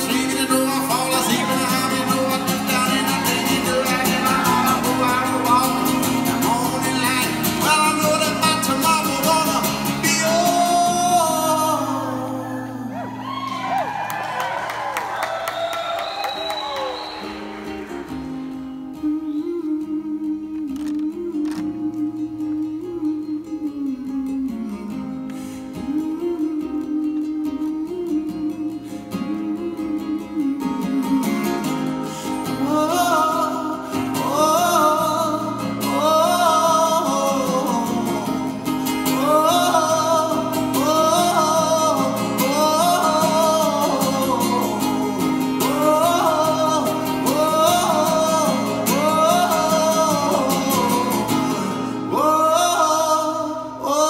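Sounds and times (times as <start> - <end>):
man singing: 0.0 - 13.1, 18.6 - 54.0
acoustic guitar: 0.0 - 54.0.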